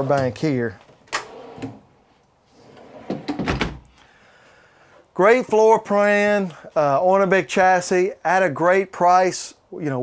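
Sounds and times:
drawer sliding: 1.2s - 1.9s, 2.6s - 3.8s
drawer knocking shut: 3.1s - 3.8s.

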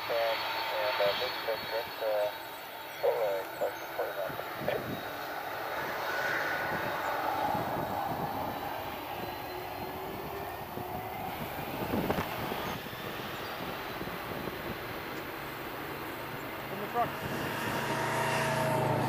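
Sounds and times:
jet engines rumbling: 0.0s - 19.0s.

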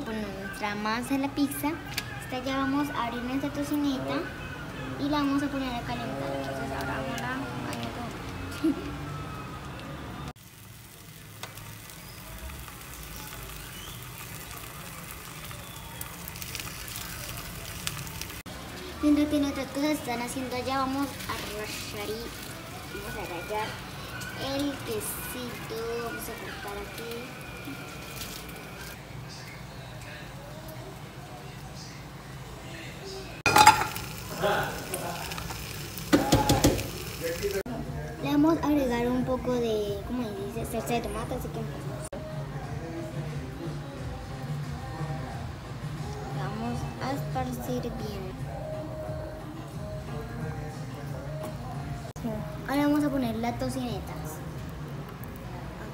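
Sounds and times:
bacon sizzling in a frying pan: 10.4s - 29.0s, 33.4s - 37.6s
utensil knocking a frying pan: 36.1s - 36.9s.

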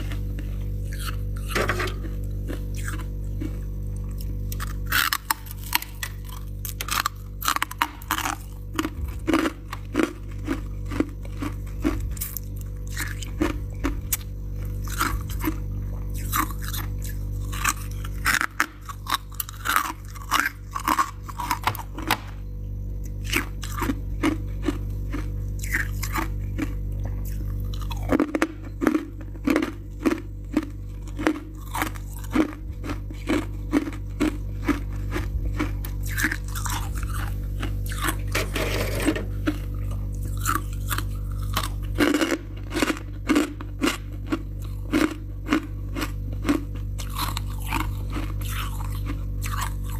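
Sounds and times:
frost being chewed crunching: 0.0s - 22.3s, 23.0s - 49.9s
steady low hum: 0.0s - 49.9s.

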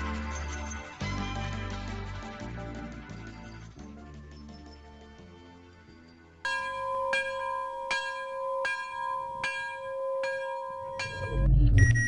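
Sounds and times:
bell-like ringing tone: 6.5s - 12.0s.

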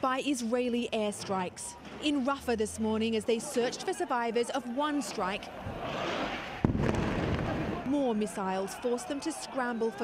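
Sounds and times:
crowd voices: 0.4s - 10.0s
explosion bang: 6.6s - 7.8s.

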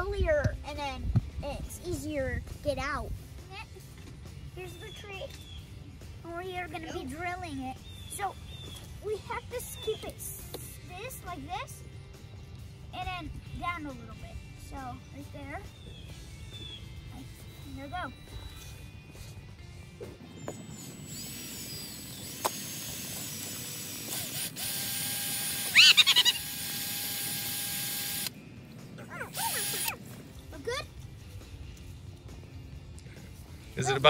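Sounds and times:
cordless drill whining: 20.4s - 28.4s, 29.3s - 30.0s
child shrieking: 25.8s - 26.4s.

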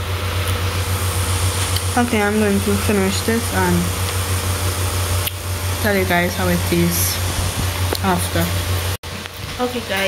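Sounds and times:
low hum: 0.0s - 9.0s
woman's voice: 2.0s - 4.0s, 5.8s - 7.3s, 8.0s - 8.6s, 9.6s - 10.0s.

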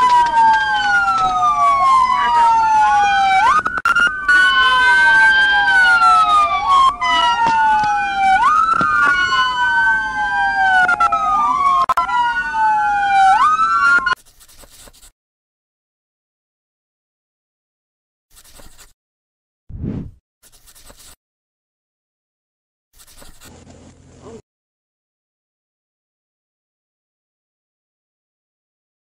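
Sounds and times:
police sirens wailing: 0.0s - 14.2s.

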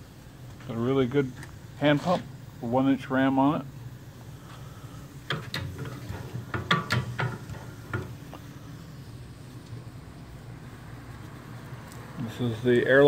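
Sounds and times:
light clicks and knocks: 5.3s - 8.4s.

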